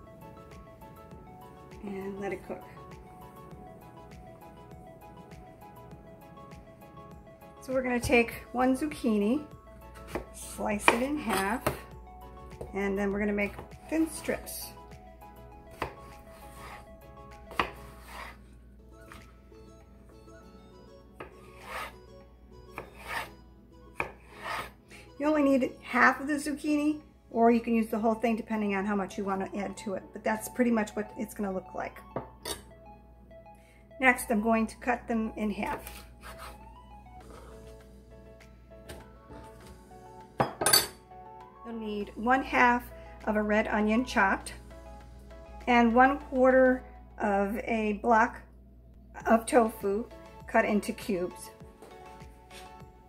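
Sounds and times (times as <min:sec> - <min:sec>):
soft background music: 0:00.0 - 0:53.0
knife slicing vegetable: 0:21.4 - 0:22.0, 0:22.7 - 0:23.3, 0:24.0 - 0:24.8.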